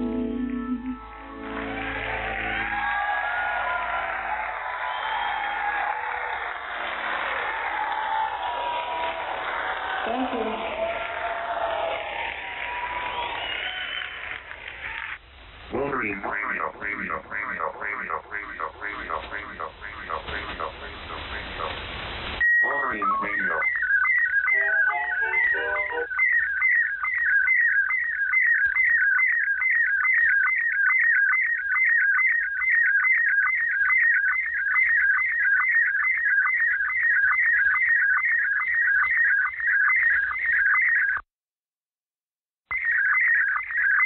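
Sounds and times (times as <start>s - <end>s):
warbling image signal tone: 0.0s - 1.4s, 22.4s - 38.0s
steady leader tone: 0.0s - 1.8s, 15.7s - 21.9s
falling glide and low notes: 0.0s - 2.0s.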